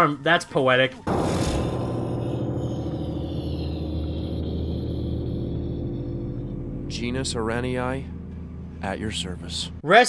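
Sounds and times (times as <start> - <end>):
dark sustained drone chord: 1.1 - 9.8.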